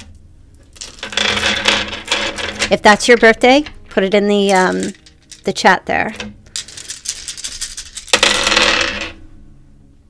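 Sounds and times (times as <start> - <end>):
dice rattling and clattering: 0.6 - 9.2.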